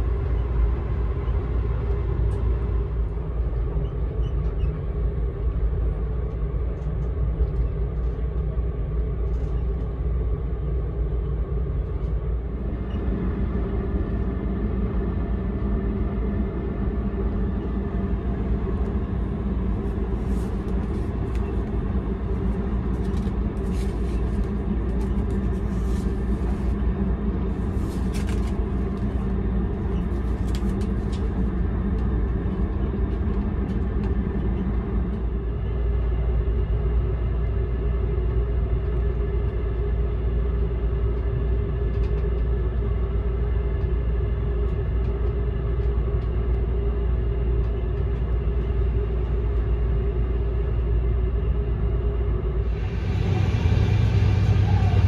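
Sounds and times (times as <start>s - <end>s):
train car rumble: 0.0s - 55.0s
paper pages rustling: 23.0s - 26.8s, 27.6s - 29.1s.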